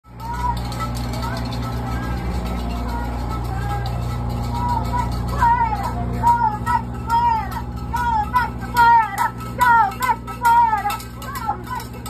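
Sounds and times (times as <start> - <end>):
bus engine idling: 0.1 - 12.0.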